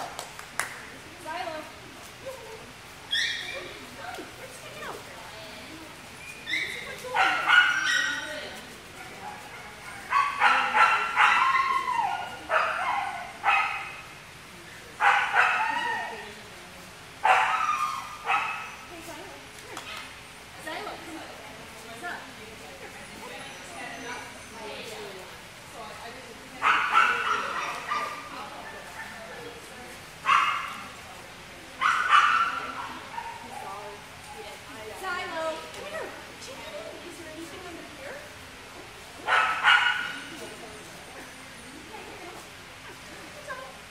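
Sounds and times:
dog whining and yipping: 0:06.2 - 0:07.0.

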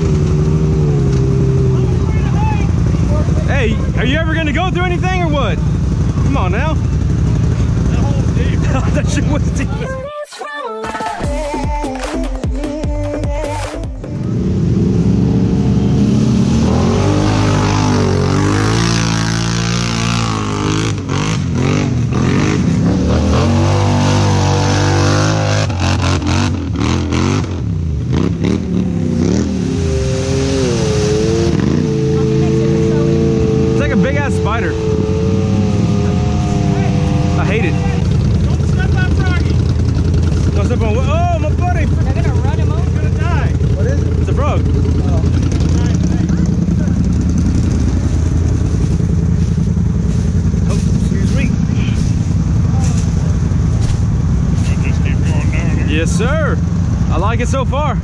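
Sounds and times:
engine revving: 0:00.0 - 0:09.9, 0:13.6 - 0:58.0
tyres churning through mud: 0:14.7 - 0:57.2.

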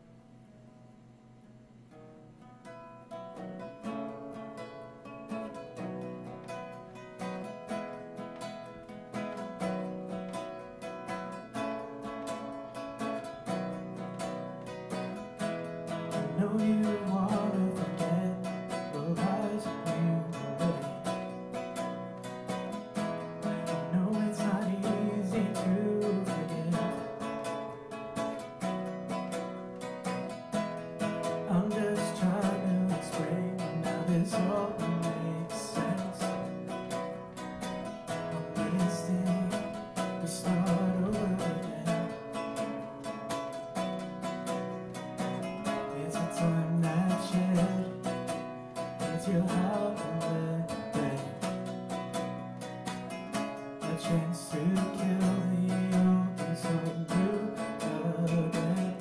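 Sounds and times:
acoustic guitar strummed: 0:00.0 - 0:59.0
man singing: 0:15.9 - 0:21.4, 0:23.4 - 0:27.8, 0:31.2 - 0:37.1, 0:38.1 - 0:42.8, 0:45.3 - 0:52.0, 0:53.8 - 0:59.0.

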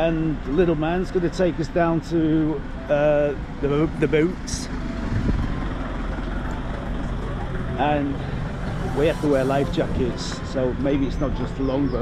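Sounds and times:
street noise: 0:00.0 - 0:12.0
vehicle engine rumbling: 0:00.0 - 0:12.0.

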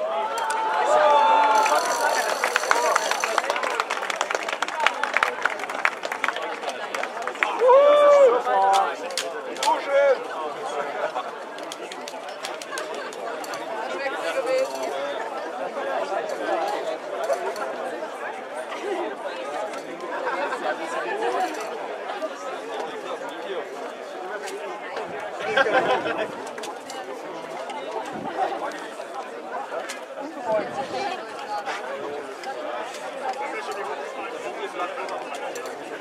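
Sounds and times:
people chattering: 0:00.0 - 0:36.0.

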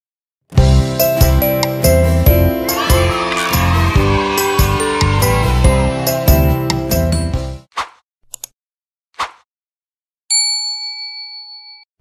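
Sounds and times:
bell-like ding: 0:10.3 - 0:11.9.

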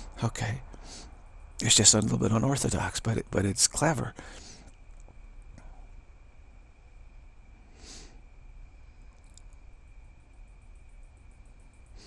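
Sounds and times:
faint clicks: 0:09.1 - 0:09.6.

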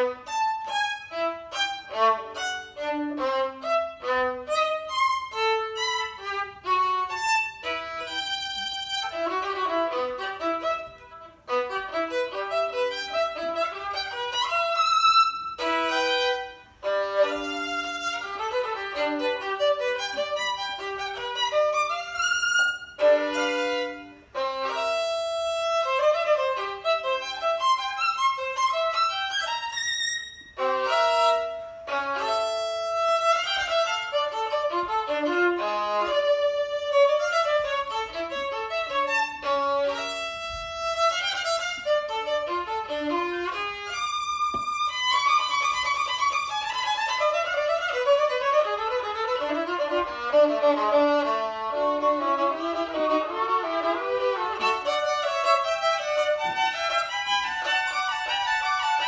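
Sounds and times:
solo violin bowed: 0:00.0 - 0:59.0.

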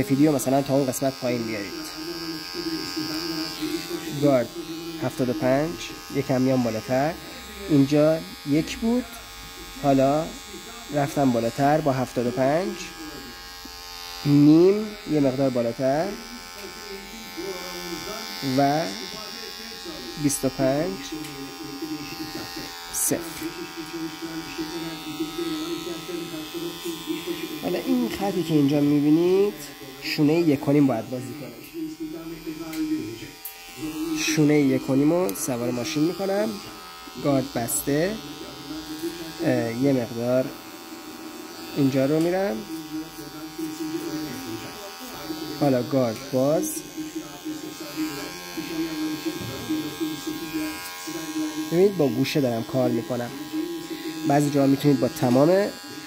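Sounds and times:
hair clipper buzzing: 0:00.0 - 0:56.0.

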